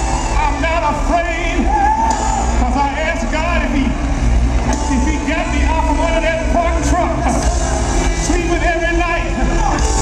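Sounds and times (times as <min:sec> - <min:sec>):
band with heavy bass: 0:00.0 - 0:10.0.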